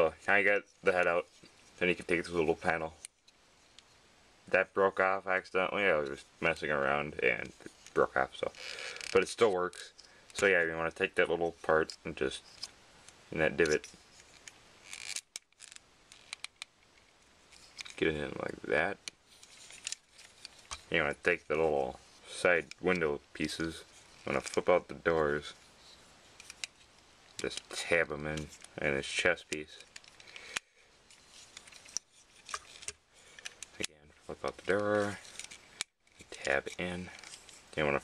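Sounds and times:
plastic rustle: 13.5 - 38.0.

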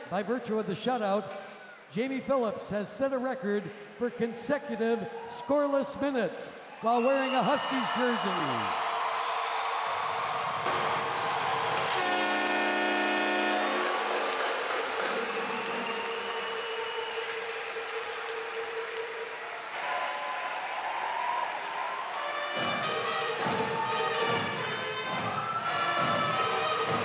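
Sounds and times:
arena crowd noise: 0.0 - 27.0
horn blast: 11.7 - 19.2, 22.1 - 27.0.

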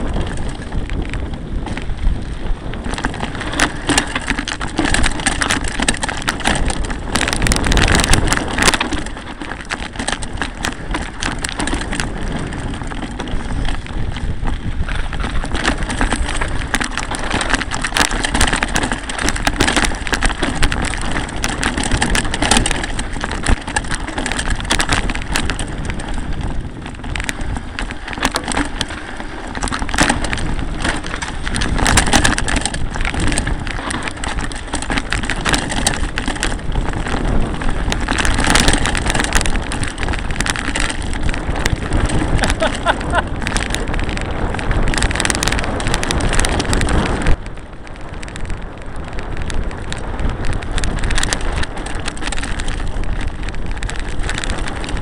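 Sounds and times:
bike knocks and rattles: 0.0 - 55.0
mountain bike rumbling on trail: 0.0 - 55.0
wind on microphone: 0.0 - 55.0.

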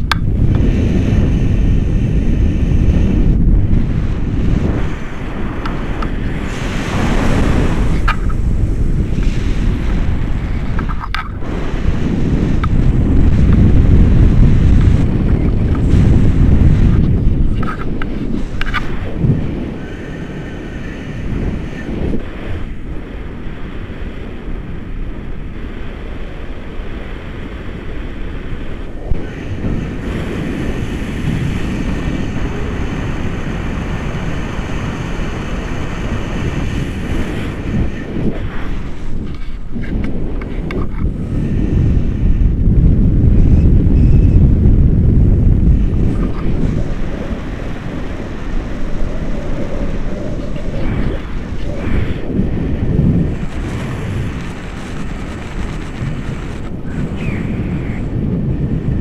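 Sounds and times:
wind rushing over microphone: 0.0 - 59.0.

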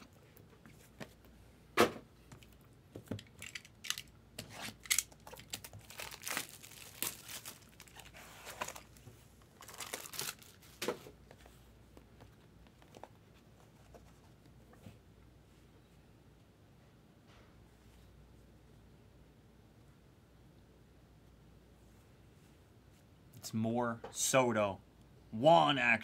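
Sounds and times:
cardboard packaging tearing: 4.4 - 8.9, 9.6 - 10.7.

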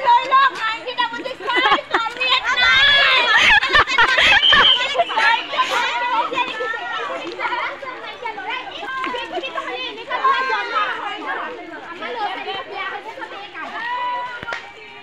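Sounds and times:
chatter of many voices: 0.0 - 15.0.

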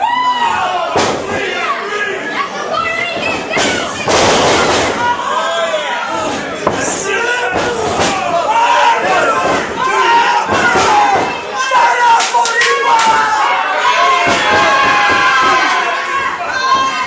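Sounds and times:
crowd shouting and yelling: 0.0 - 17.0.

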